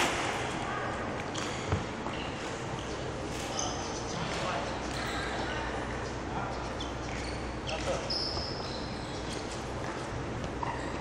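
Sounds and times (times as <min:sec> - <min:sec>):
sports shoes squeaking: 0:06.0 - 0:11.0.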